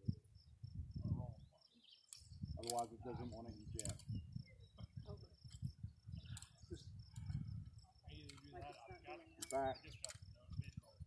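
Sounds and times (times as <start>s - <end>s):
wind rumble on microphone: 0.0s - 1.6s, 2.2s - 11.0s
quiet talk: 0.0s - 11.0s
light clicks: 9.4s - 10.8s.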